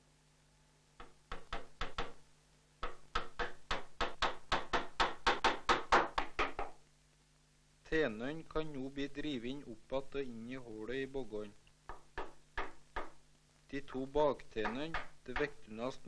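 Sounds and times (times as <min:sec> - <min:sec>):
hammer blows on wooden wedge: 0:14.0 - 0:16.0.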